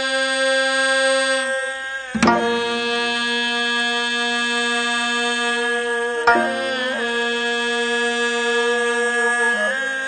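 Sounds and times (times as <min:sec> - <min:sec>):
court music ensemble holding note: 0:06.3 - 0:07.4.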